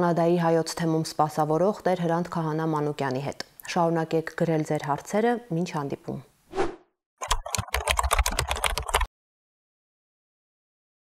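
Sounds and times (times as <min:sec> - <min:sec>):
rapid keyboard typing: 0:07.2 - 0:09.1.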